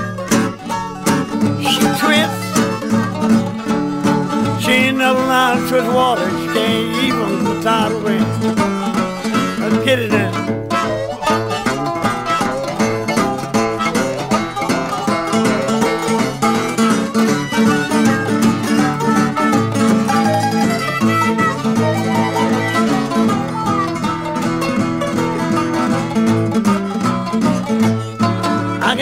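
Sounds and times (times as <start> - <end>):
mandolin playing: 0.0 - 29.0
plucked acoustic guitar: 0.0 - 29.0.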